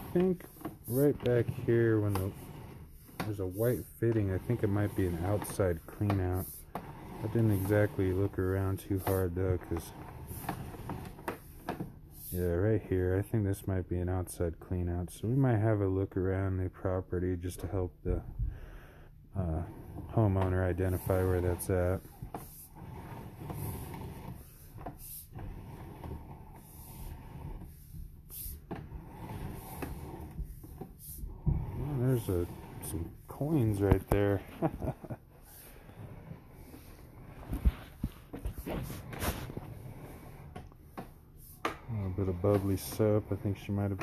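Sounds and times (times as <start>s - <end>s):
cable and reel rumble: 0.0s - 11.3s, 28.7s - 40.6s.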